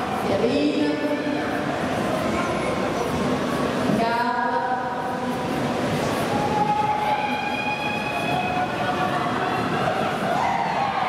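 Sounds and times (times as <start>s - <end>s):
spectators: 0.0s - 11.0s.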